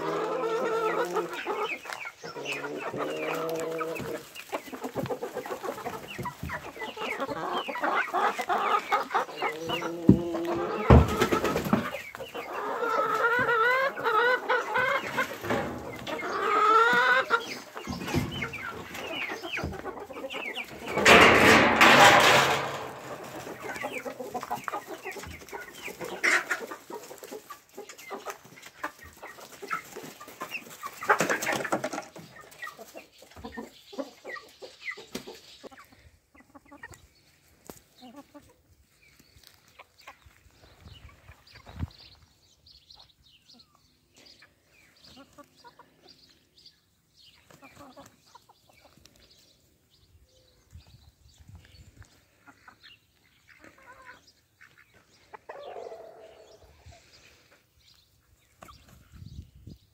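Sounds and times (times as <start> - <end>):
chickens clucking: 0.0 - 59.9.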